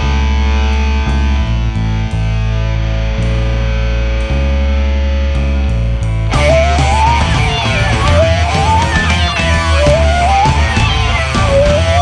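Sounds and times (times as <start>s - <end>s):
distorted electric guitar chords: 0.0s - 12.0s
heavy bass notes: 0.0s - 12.0s.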